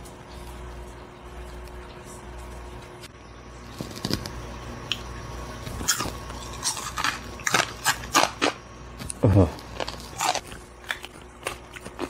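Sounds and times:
crisp crunching of chewing: 3.7s - 5.0s, 5.6s - 12.0s.

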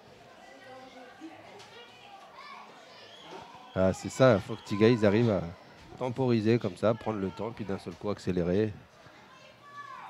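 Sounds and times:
stadium background noise: 0.0s - 10.0s
distant footballers shouting: 3.0s - 8.0s.

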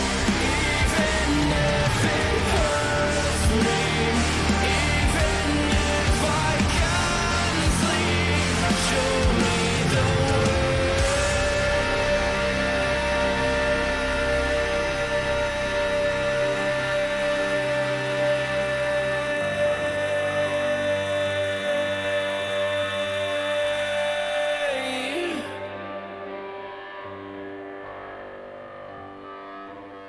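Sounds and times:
man singing a long note: 0.0s - 26.6s
heavy rock band: 0.0s - 30.0s.

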